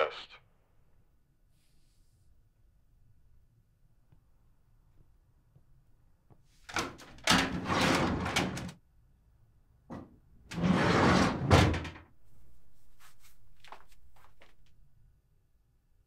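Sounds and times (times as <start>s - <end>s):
drawer shutting with bang: 6.7s - 8.7s, 10.6s - 12.0s
metal drawer rolling on runners: 7.2s - 8.7s, 10.5s - 12.0s.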